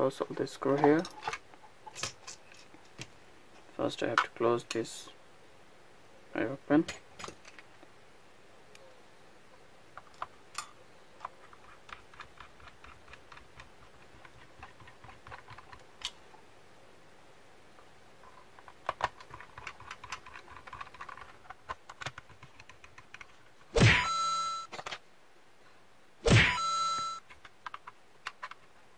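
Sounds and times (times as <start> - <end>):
plastic parts clicking: 10.0 - 16.2, 18.3 - 23.4, 27.2 - 28.8.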